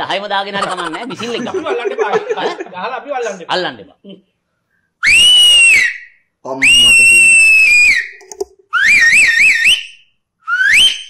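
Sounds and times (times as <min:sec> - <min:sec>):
man whistling through hands: 0:05.0 - 0:11.0.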